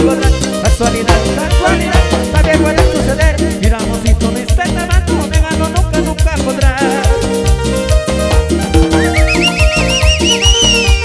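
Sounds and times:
live band dance music: 0.0 - 11.0
high warbling whinny-like trill: 8.9 - 11.0.

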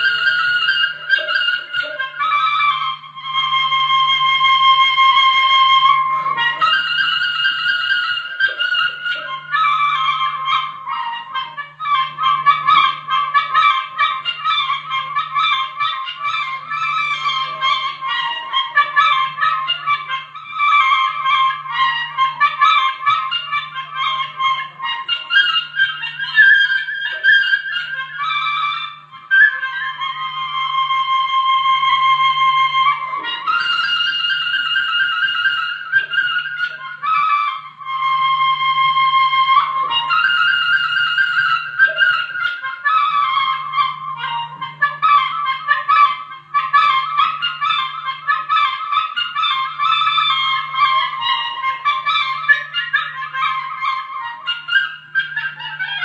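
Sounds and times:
wind instrument high melody: 0.0 - 56.0.

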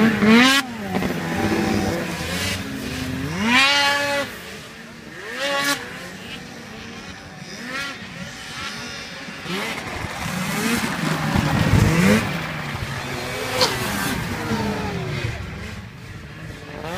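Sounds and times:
snowmobile engines revving: 0.0 - 16.9.

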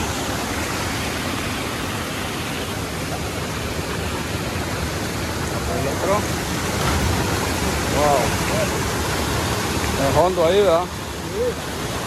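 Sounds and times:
waterfall and river rushing: 0.0 - 12.0.

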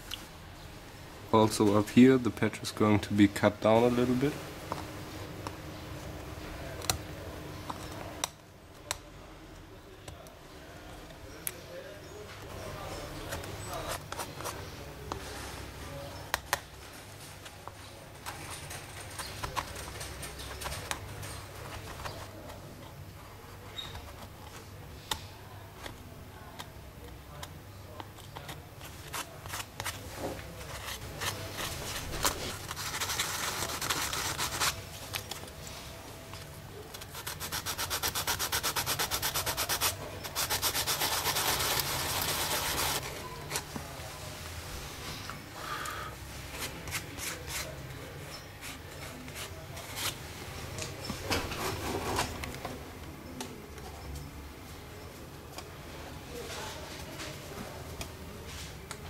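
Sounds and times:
rapid rubbing strokes on wood: 37.1 - 43.0.

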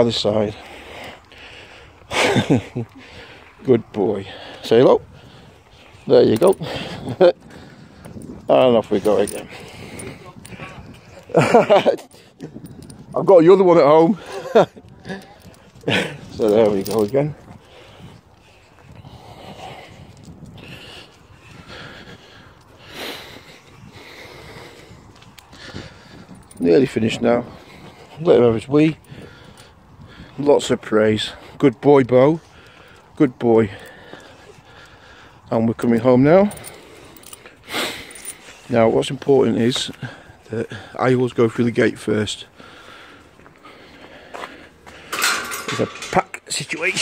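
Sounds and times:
footsteps on paved path: 0.0 - 47.0.

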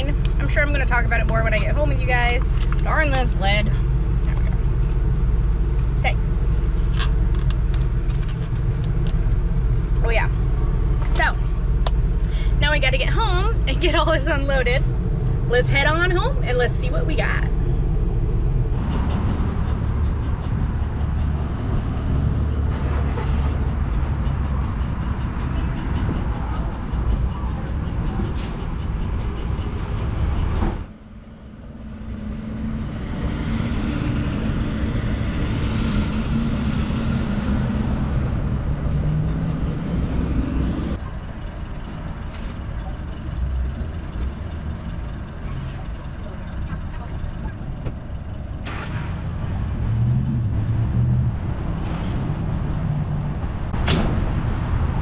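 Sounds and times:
loud low rumble: 0.0 - 41.0, 47.0 - 55.0
low engine hum: 0.0 - 55.0.

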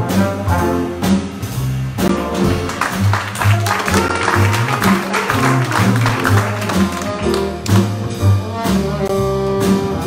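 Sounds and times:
jazz combo playing: 0.0 - 10.0
upright bass walking line: 2.0 - 9.9.

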